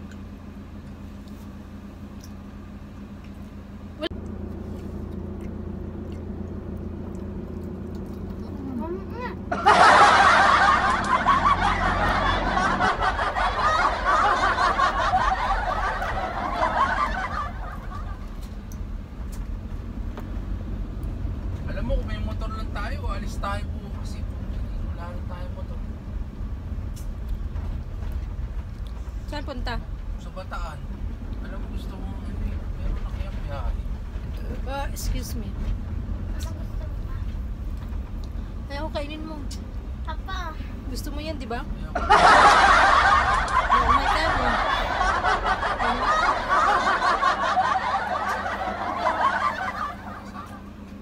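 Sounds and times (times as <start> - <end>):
van engine rumble: 0.0 - 51.0
high-pitched cackling laughter: 9.5 - 18.4, 42.0 - 50.6.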